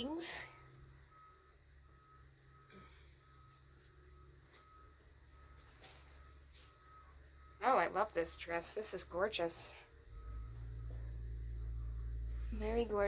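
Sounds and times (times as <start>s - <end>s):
faint high beep: 0.0s - 9.0s, 9.7s - 13.0s.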